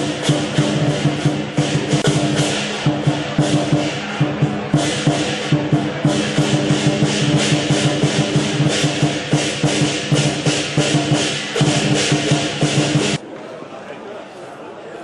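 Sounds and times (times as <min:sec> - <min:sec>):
cymbals clashing: 0:00.0 - 0:13.2
drum beating fast: 0:00.0 - 0:13.2.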